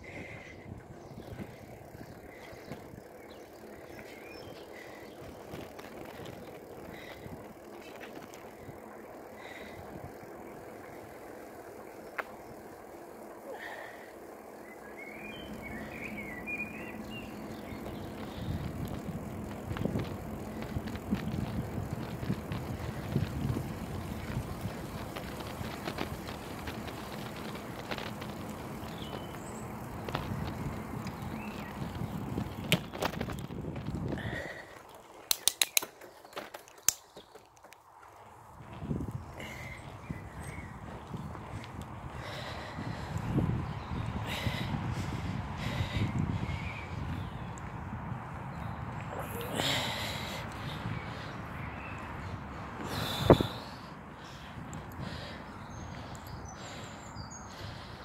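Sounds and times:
bicycle tyre and wind noise: 0.0 - 58.0
sharp clicks: 35.2 - 37.8.

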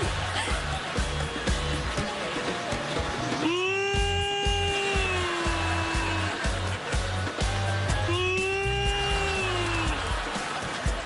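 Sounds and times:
music with steady beat: 0.0 - 11.0.

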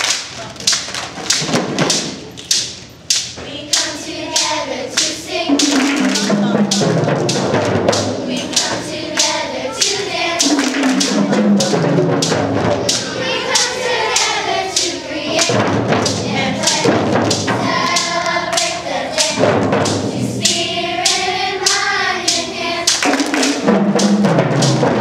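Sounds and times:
hand drums beating: 1.2 - 2.7, 3.7 - 25.0
children's choir singing: 3.4 - 25.0.

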